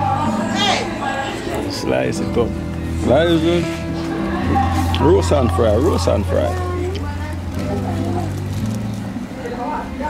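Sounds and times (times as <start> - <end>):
voices talking: 0.0 - 10.0.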